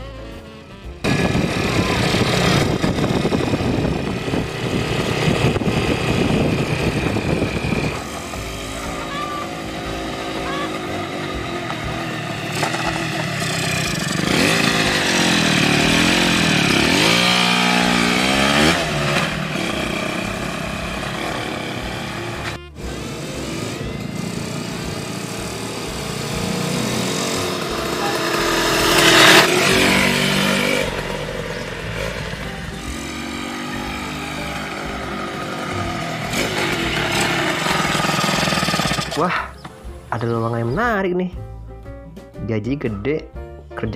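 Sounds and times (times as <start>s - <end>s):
music playing: 0.0s - 3.2s, 7.1s - 13.2s, 14.3s - 38.2s, 39.2s - 43.9s
dirt bike engine revving: 0.0s - 39.6s.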